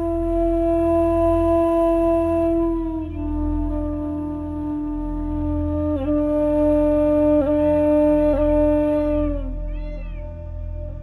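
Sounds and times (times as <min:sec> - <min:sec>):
held flute note: 0:00.0 - 0:11.0
low steady drone: 0:00.0 - 0:11.0.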